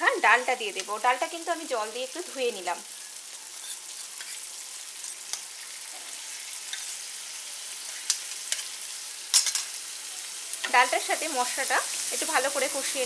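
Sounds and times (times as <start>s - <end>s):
lentils sizzling in hot oil: 0.0s - 13.0s.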